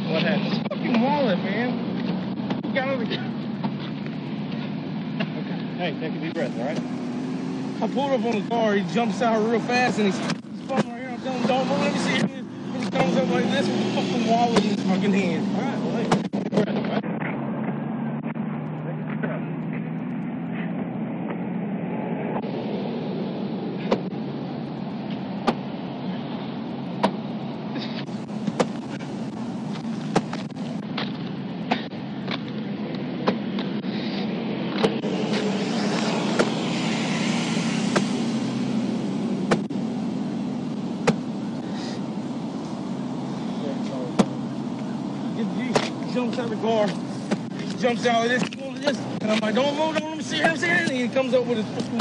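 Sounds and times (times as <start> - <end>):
traffic passing: 0.0 - 52.0
vehicle and roadway rumble: 0.0 - 52.0.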